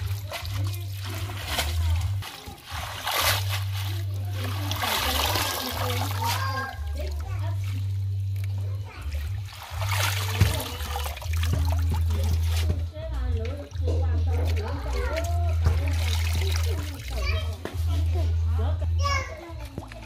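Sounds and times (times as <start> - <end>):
water splashing in a steel basin: 0.0 - 17.7, 19.5 - 20.0.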